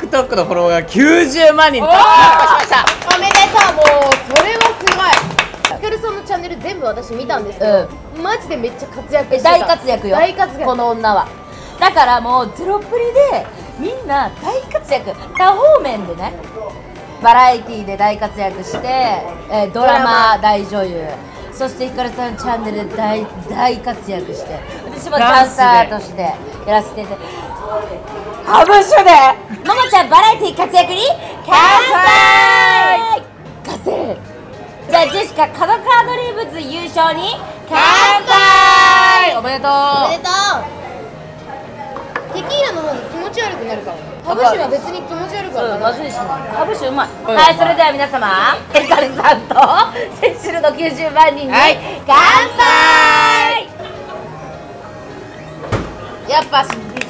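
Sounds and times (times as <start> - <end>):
women cheering: 1.8 - 2.8, 31.5 - 33.2
people clapping: 2.1 - 5.8, 56.4 - 57.0
women shouting a toast cheer: 31.5 - 33.2, 37.7 - 39.4, 52.1 - 53.7.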